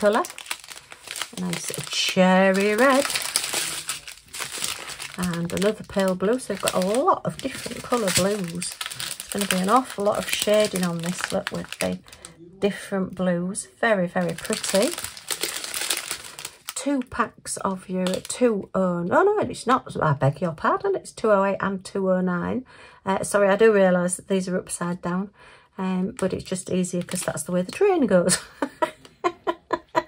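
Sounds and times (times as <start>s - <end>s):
plastic bags crinkling: 0.0s - 12.4s, 14.2s - 16.8s, 18.0s - 18.3s, 26.4s - 27.8s.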